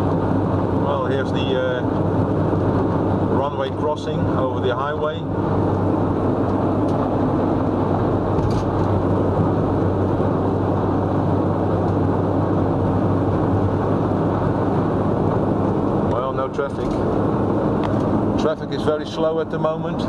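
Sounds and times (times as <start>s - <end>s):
low engine hum: 0.0s - 20.0s.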